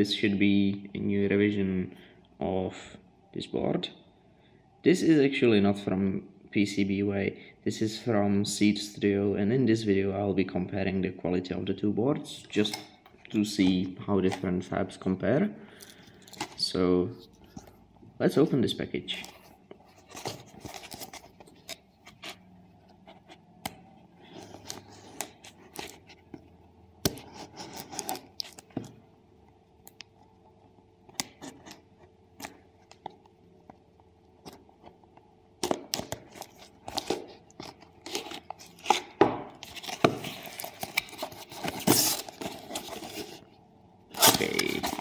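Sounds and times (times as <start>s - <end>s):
plastic wrap crinkling: 44.2s - 45.0s.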